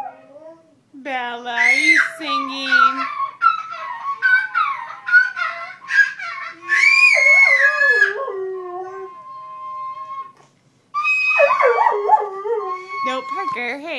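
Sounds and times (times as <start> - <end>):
dog howling: 1.6 - 10.4, 11.0 - 13.6.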